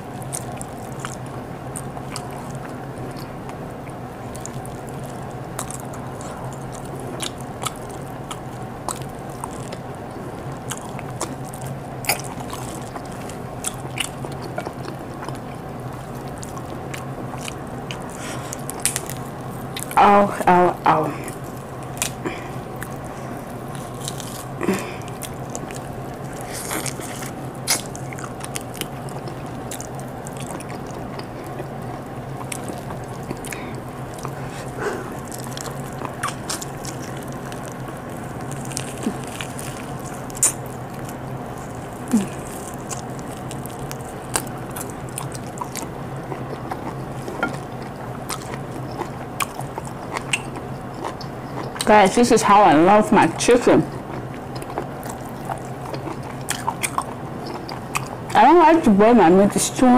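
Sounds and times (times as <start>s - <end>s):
person chewing: 0.0s - 52.2s, 52.9s - 58.4s
steady low hum: 0.0s - 59.9s.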